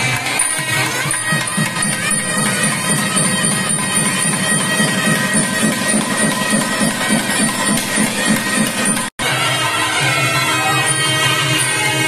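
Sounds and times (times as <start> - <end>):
reed wind instrument: 0.0 - 12.0
steady drum beat: 1.1 - 9.4.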